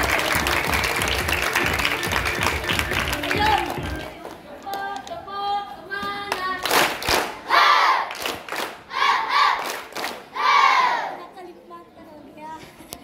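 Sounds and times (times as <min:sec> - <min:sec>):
crowd shouts and cheers: 0:00.0 - 0:04.0
hand claps: 0:00.0 - 0:05.2.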